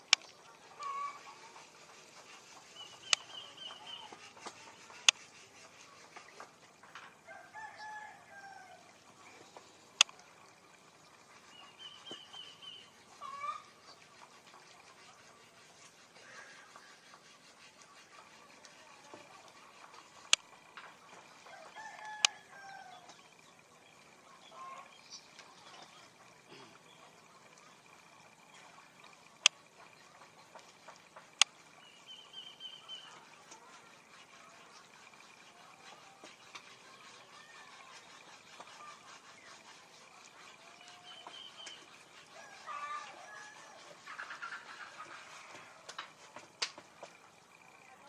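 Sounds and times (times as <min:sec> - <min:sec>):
bird chirps and calls: 0:02.3 - 0:06.1, 0:11.4 - 0:13.7, 0:31.8 - 0:34.8, 0:40.4 - 0:45.4
faint rooster crowing: 0:07.2 - 0:09.0, 0:21.3 - 0:23.2, 0:40.5 - 0:46.6.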